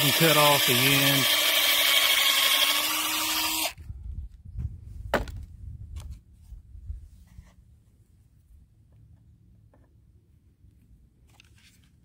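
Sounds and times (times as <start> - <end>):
cordless drill boring into wood: 0.0 - 3.8.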